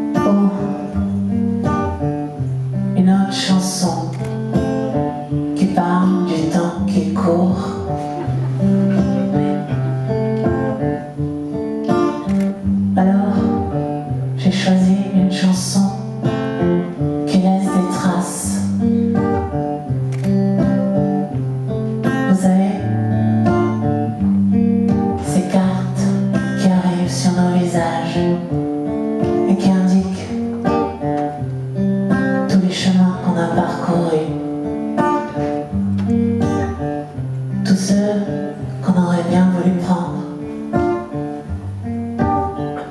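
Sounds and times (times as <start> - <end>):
person singing: 0.0 - 1.2, 2.9 - 19.6, 22.0 - 23.8, 25.1 - 31.2, 32.2 - 35.7, 37.6 - 41.3
acoustic guitar chords: 0.0 - 42.9.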